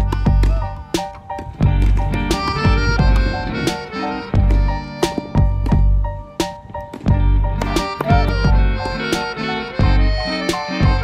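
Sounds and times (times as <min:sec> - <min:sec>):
background music with bass beat: 0:00.0 - 0:11.0.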